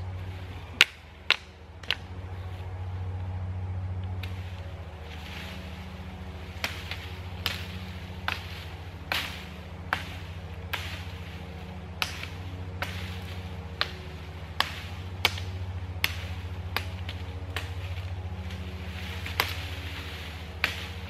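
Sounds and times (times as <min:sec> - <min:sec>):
steady low hum: 0:00.0 - 0:21.0
swishing chopping strokes on branches: 0:04.1 - 0:21.0.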